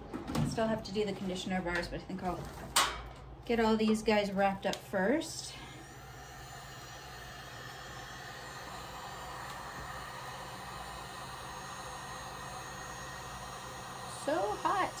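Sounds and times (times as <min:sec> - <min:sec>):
heat gun blowing air: 0:05.6 - 0:15.0.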